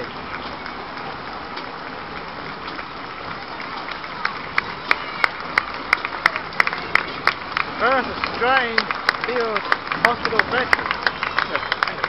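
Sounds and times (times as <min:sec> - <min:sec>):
street crowd murmur: 0:00.0 - 0:12.0
sharp hand claps: 0:03.8 - 0:12.0.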